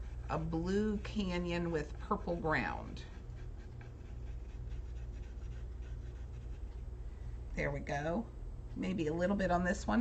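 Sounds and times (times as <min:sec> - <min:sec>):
colored pencil scratching paper: 0:00.0 - 0:06.9.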